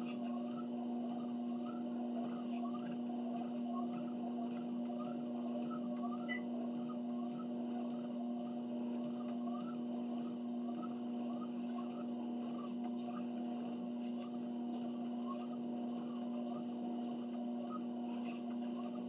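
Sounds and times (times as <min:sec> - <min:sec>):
treadmill motor hum: 0:00.0 - 0:19.0
walking steps on treadmill belt: 0:00.0 - 0:19.0.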